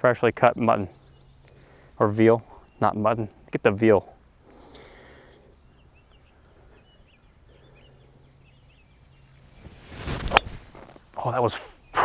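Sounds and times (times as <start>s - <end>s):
small bird chirps: 0.6s - 1.8s, 4.5s - 12.0s
golf club swish: 9.5s - 11.0s.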